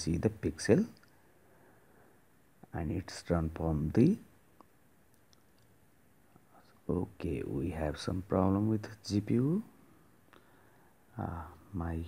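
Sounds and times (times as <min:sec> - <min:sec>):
man speaking: 0:00.0 - 0:01.1, 0:02.6 - 0:04.4, 0:06.6 - 0:09.8, 0:11.1 - 0:12.0.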